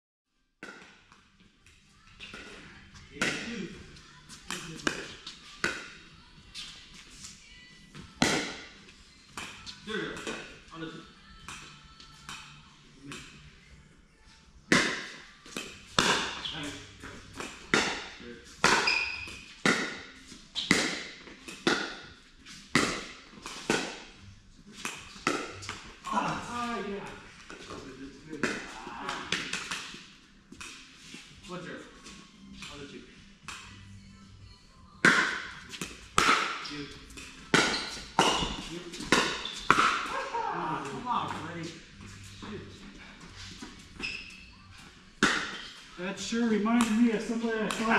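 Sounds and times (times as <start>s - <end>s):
ball bouncing on court: 17.3s - 22.0s, 35.0s - 40.2s
paddles hitting plastic ball: 22.7s - 24.0s, 35.0s - 41.0s, 45.2s - 45.6s, 46.8s - 47.9s.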